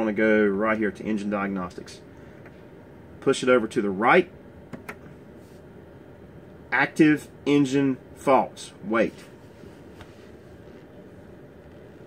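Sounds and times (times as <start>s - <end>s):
steady low background rumble: 0.0s - 12.0s.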